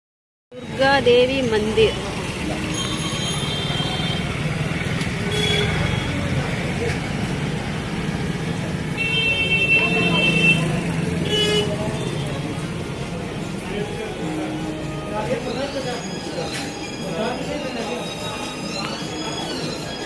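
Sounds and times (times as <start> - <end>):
traffic: 0.5 - 20.0
people talking: 0.6 - 20.0
vehicle horns tooting: 2.6 - 6.4, 8.9 - 12.6.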